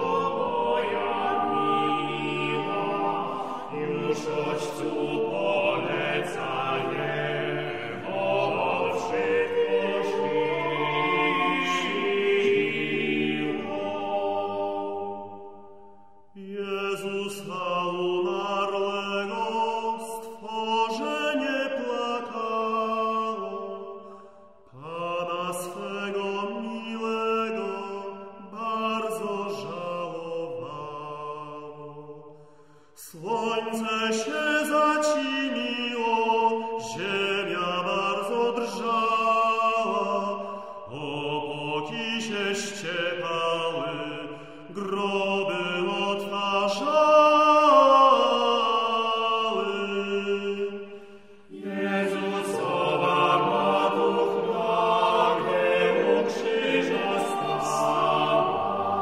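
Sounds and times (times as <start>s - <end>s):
chant-like hymn singing: 0.0s - 59.0s
singer breathing: 24.0s - 24.6s, 32.3s - 33.0s, 40.4s - 40.8s, 44.3s - 44.7s, 50.8s - 51.5s.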